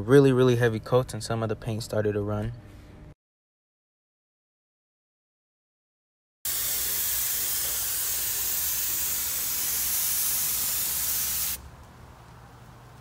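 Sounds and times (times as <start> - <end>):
paint spray gun hissing: 6.5 - 11.6.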